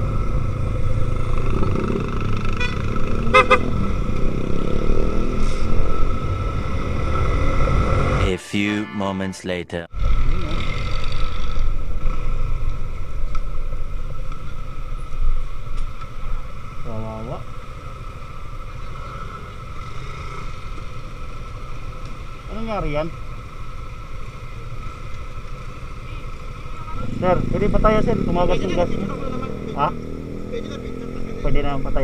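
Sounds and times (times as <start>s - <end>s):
motorcycle engine: 0.0s - 8.2s, 10.0s - 15.6s, 16.2s - 32.0s
wind rumble: 0.0s - 8.3s.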